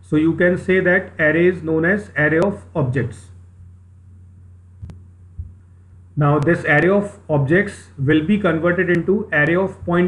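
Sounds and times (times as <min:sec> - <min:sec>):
low electrical hum: 0:00.0 - 0:10.0
soft low thump: 0:04.8 - 0:05.6.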